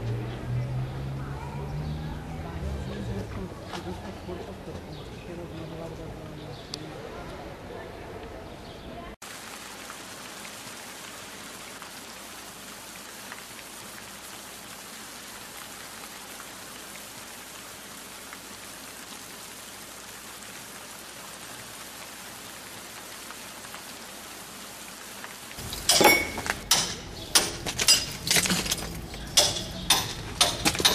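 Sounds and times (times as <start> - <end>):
steady hiss with crackles: 9.2 - 29.3.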